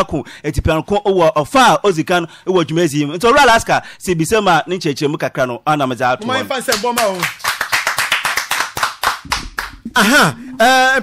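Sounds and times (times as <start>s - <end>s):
hand clapping: 6.6s - 10.0s.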